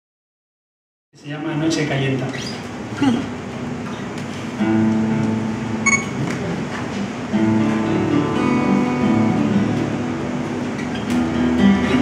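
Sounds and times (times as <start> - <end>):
acoustic guitar chord ringing: 4.6 - 6.3, 7.2 - 12.0.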